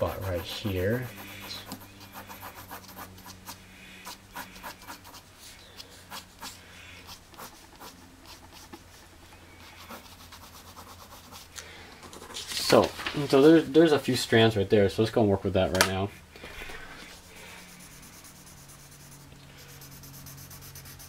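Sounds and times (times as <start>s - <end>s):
pencil scratching on paper: 0.0s - 11.5s, 17.0s - 21.0s
low steady hum: 0.0s - 21.0s.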